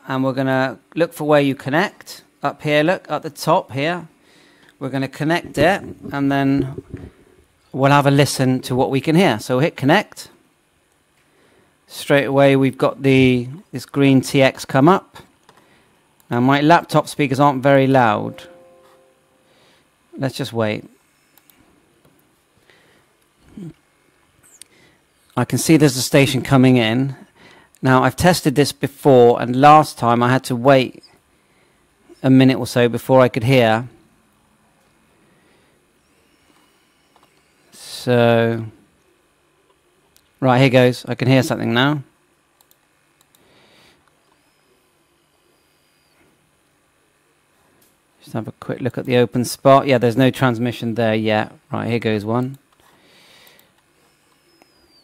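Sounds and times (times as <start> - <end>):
faint clicks: 42.6 - 44.4.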